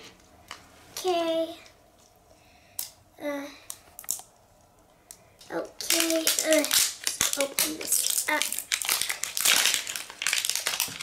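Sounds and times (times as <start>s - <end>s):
plastic wrapping crinkling: 5.4s - 11.0s.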